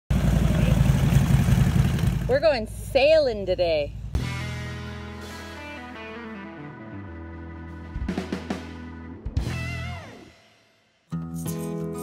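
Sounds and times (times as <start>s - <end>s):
motorcycle engine idling: 0.1s - 3.0s.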